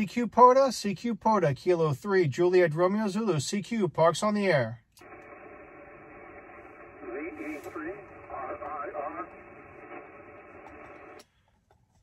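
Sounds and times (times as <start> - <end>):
radio static: 5.0 - 11.2
faint voice over radio: 6.8 - 10.0.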